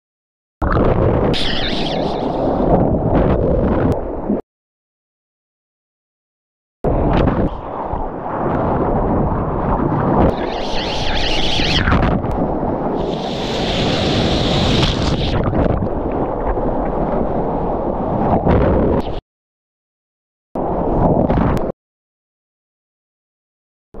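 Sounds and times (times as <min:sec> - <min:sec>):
wind buffeting microphone: 0:06.9 - 0:19.2.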